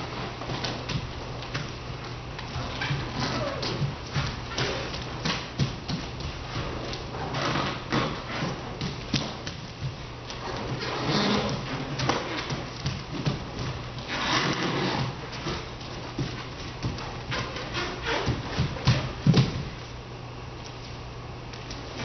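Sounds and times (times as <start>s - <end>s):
bare feet on floor: 0.0s - 22.0s
steady low hum: 0.0s - 22.0s.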